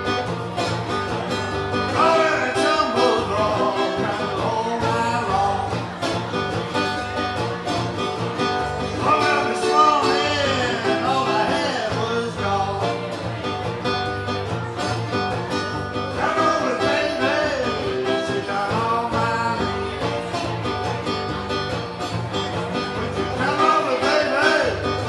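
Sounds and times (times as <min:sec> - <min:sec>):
strummed acoustic guitar: 0:00.0 - 0:25.0
man singing: 0:01.7 - 0:06.2, 0:08.8 - 0:13.3, 0:15.9 - 0:20.4, 0:22.8 - 0:25.0.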